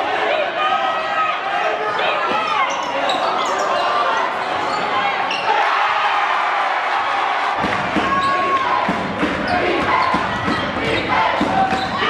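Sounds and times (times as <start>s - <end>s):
crowd chatter: 0.0s - 12.0s
sneaker squeaks: 1.9s - 5.6s, 7.9s - 8.6s, 9.4s - 12.0s
basketball bouncing on court: 7.6s - 12.0s.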